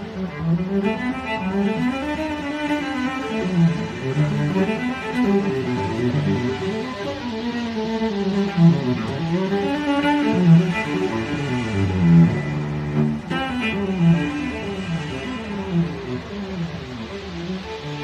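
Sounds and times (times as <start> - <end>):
cello playing melody: 0.0 - 18.0.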